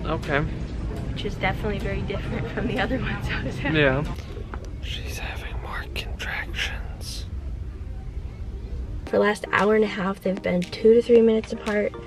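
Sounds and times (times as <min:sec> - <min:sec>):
low background rumble: 0:00.0 - 0:11.9.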